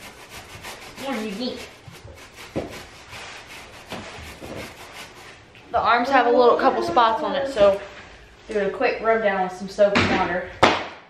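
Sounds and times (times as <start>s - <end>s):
brush scrubbing upholstery: 0.0s - 5.4s.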